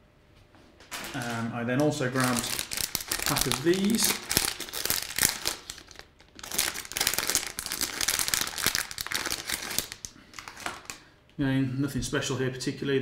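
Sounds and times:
plastic bag crinkling: 0:00.8 - 0:11.1.

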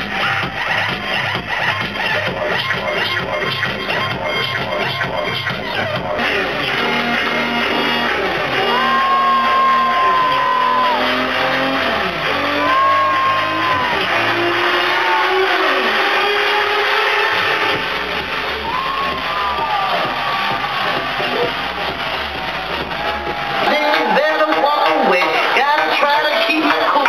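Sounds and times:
loud electronic dance music: 0:00.0 - 0:27.0
sliding high synth notes: 0:05.8 - 0:25.6.

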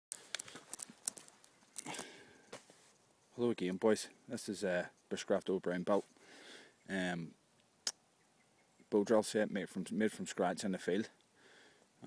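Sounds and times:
dry leaves and twigs crackling: 0:00.1 - 0:03.8.

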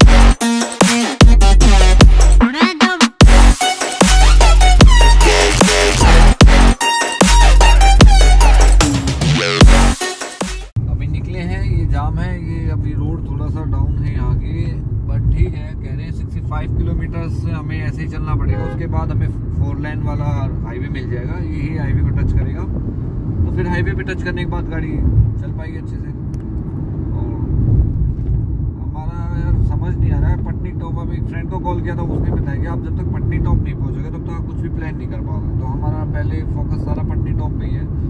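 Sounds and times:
road and engine noise in car: 0:10.8 - 0:38.0.

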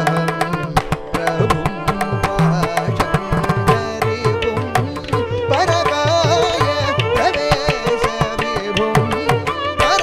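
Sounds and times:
male voice singing: 0:00.0 - 0:10.0
violin melody: 0:00.0 - 0:10.0.

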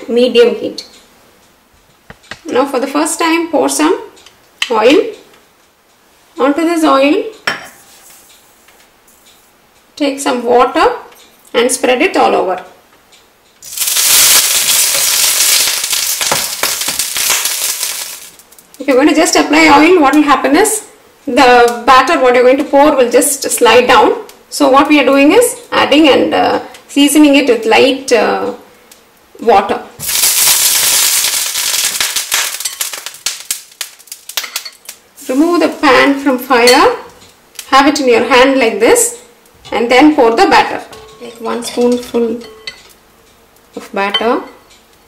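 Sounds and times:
water sizzling in hot pan: 0:13.6 - 0:18.8, 0:30.0 - 0:37.0.

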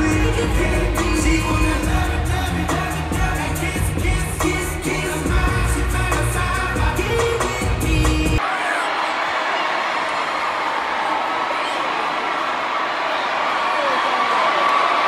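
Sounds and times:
concert music with heavy bass: 0:00.0 - 0:08.4
crowd screaming and cheering: 0:00.0 - 0:15.0.

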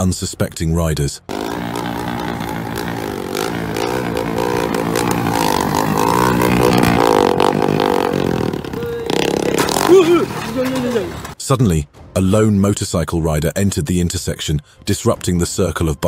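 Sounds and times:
motorcycle engines revving: 0:01.3 - 0:11.3.

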